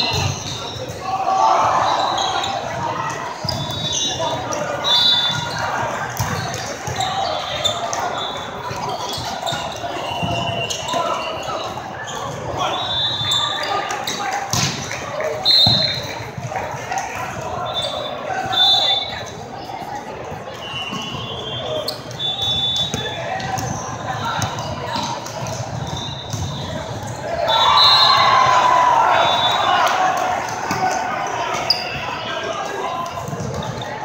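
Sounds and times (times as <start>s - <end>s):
referee whistles: 0.0s - 2.7s, 3.4s - 14.2s, 15.3s - 16.1s, 17.6s - 19.3s, 20.5s - 24.4s, 25.7s - 30.1s
players shouting: 0.0s - 19.3s, 20.6s - 34.0s.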